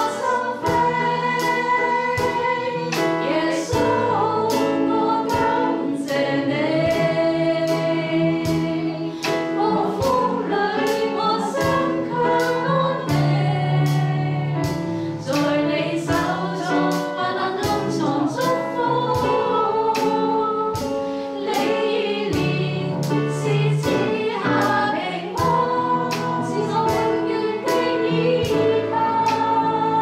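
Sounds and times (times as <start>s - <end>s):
group singing worship song: 0.0s - 30.0s.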